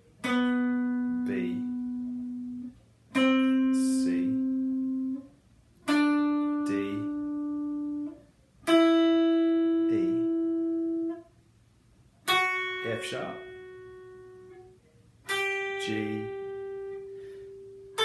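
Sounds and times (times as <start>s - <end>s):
electric guitar single notes: 0.0s - 11.3s, 12.2s - 18.0s
person naming notes: 0.3s - 2.6s, 3.2s - 5.2s, 5.9s - 8.2s, 9.5s - 10.6s, 15.6s - 17.4s.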